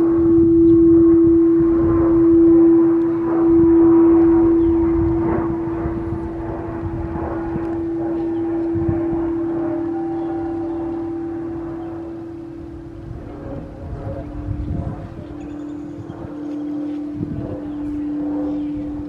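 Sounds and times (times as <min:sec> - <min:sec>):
second lower bowl tone: 0:00.0 - 0:19.0
singing bowl sustained tone: 0:00.0 - 0:19.0.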